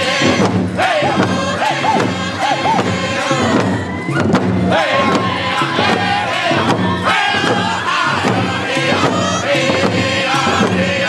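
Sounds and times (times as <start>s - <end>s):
men singing in high voices: 0.0s - 4.0s, 4.6s - 11.0s
frame drums beating: 0.0s - 11.0s.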